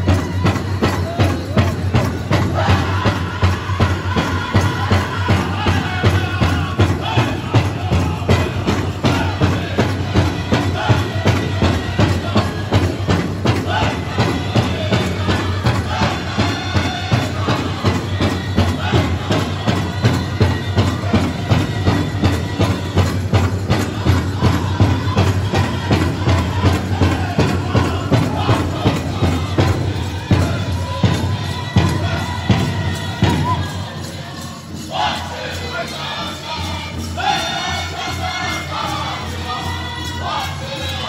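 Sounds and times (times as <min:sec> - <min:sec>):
big drum steady beat: 0:00.0 - 0:41.0
drum group singing: 0:00.0 - 0:41.0.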